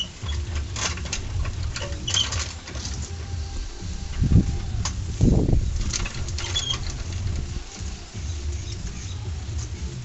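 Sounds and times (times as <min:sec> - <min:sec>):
steady low rumble: 0:00.2 - 0:02.1, 0:02.8 - 0:10.0.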